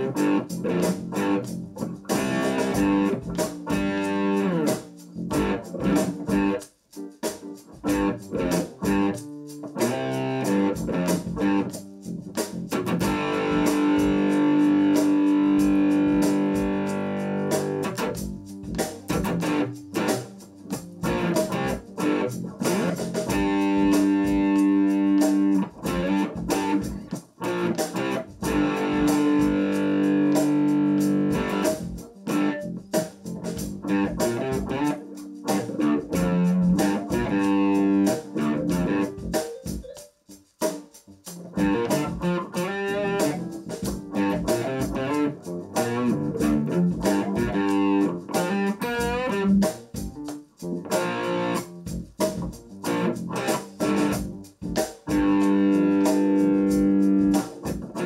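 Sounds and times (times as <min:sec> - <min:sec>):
electric guitar chord strums: 0:00.0 - 0:06.6, 0:07.7 - 0:40.1, 0:41.4 - 0:58.0.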